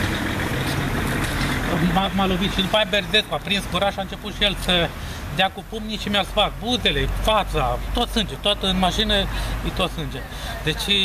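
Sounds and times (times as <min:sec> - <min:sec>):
street noise: 0:00.0 - 0:11.0
vehicle engine running: 0:00.0 - 0:11.0
man's voice: 0:01.6 - 0:11.0.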